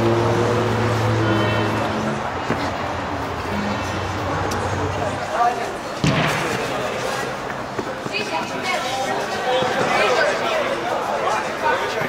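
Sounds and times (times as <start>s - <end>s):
indistinct chatter in a hall: 0.0s - 12.0s.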